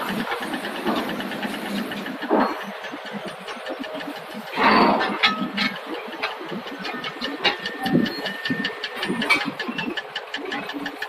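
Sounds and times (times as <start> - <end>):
engine idling: 0.0 - 11.0
rapid regular ticking: 0.0 - 11.0.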